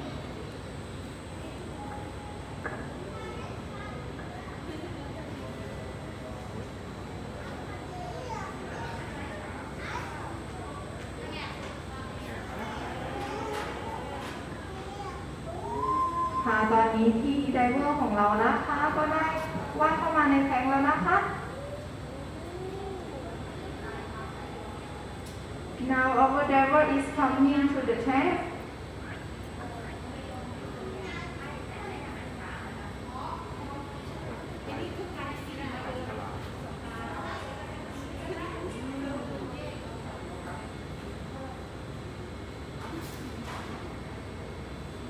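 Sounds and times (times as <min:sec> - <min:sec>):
faint indistinct voices: 0:00.0 - 0:45.0
hum of a large hall: 0:00.0 - 0:45.0
low room noise rumble: 0:00.0 - 0:45.0
woman's amplified voice: 0:16.3 - 0:21.5, 0:25.8 - 0:28.7
faint indistinct voice: 0:21.4 - 0:25.2.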